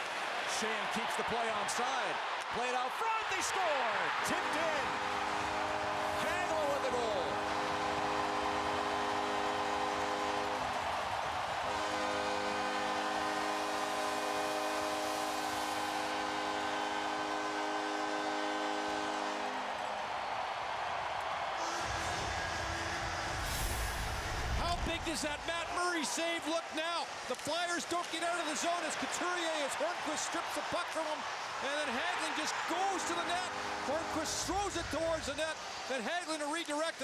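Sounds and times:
crowd noise: 0.0s - 37.0s
goal horn blasts: 2.7s - 20.0s, 21.6s - 25.6s, 27.6s - 35.5s.

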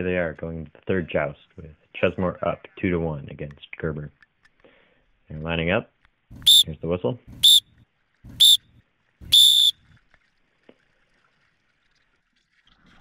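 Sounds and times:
whistle blasts: 6.4s - 6.7s, 7.3s - 7.7s, 8.3s - 9.9s.

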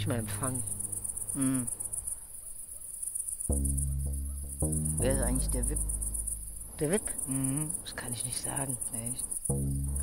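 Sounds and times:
held low music notes: 0.0s - 0.9s, 3.5s - 7.7s, 9.4s - 10.0s
crickets chirping: 0.0s - 10.0s.

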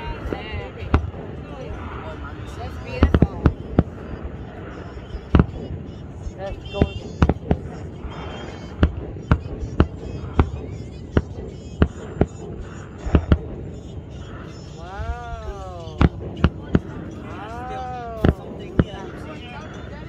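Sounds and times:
fireworks bursting: 0.0s - 20.0s.

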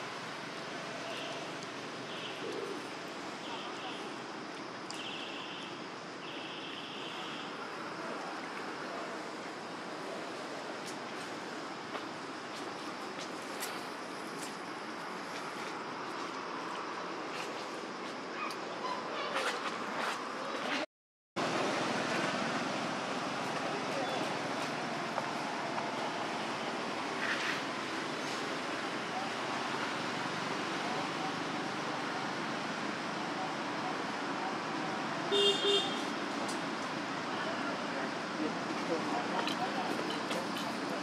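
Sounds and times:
outdoor background noise: 0.0s - 41.0s
distant voices: 21.4s - 35.3s.

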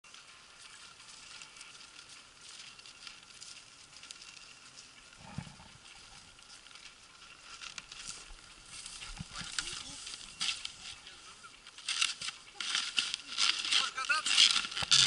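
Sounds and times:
footsteps in snow and dry grass: 0.1s - 15.0s.

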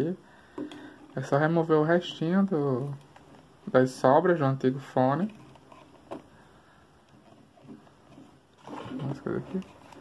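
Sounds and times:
plastic and foam handling: 7.1s - 10.0s.

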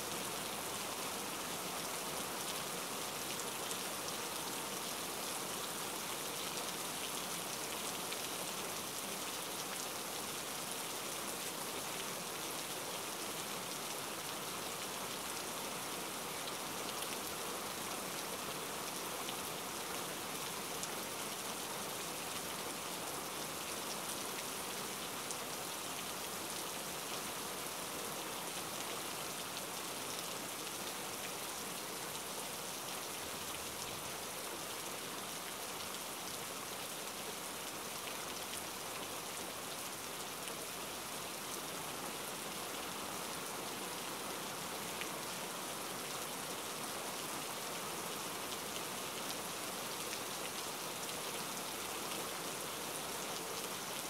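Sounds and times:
steady rain: 0.0s - 54.0s.

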